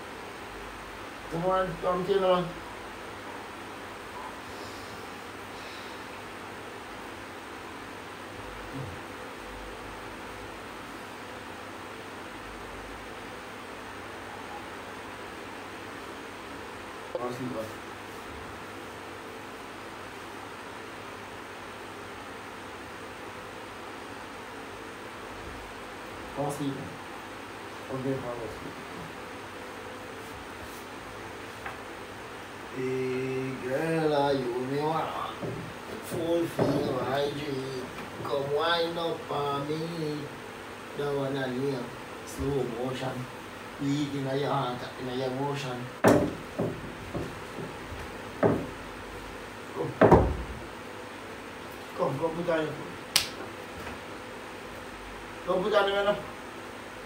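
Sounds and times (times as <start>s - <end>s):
electric fan whooshing: 0.0s - 57.0s.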